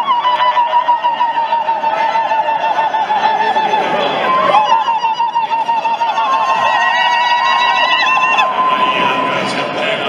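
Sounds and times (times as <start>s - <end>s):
women ululating: 0.0s - 9.5s.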